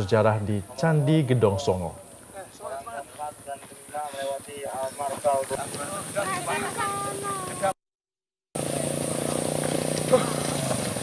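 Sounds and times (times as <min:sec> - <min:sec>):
small engine running: 0:04.6 - 0:07.7, 0:08.6 - 0:11.0.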